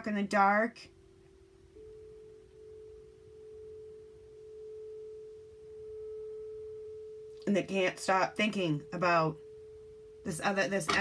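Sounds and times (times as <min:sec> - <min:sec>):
soft sustained pure tones: 0:00.0 - 0:11.0.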